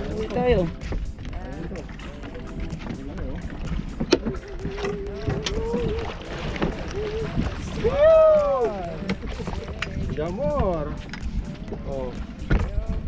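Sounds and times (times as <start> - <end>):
people's voices: 0.0 - 3.7, 4.4 - 13.0
wind and water rumble: 0.0 - 13.0.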